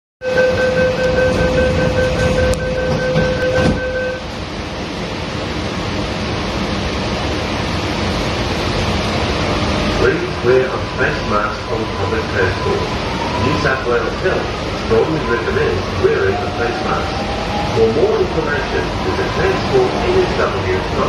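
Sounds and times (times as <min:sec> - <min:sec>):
steady whine: 0:00.2 - 0:21.0
train carriage rushing rumble: 0:00.2 - 0:21.0.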